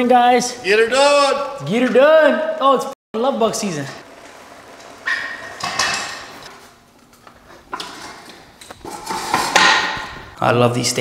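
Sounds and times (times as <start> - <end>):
dirt bike wheeled across floor: 3.6 - 10.3.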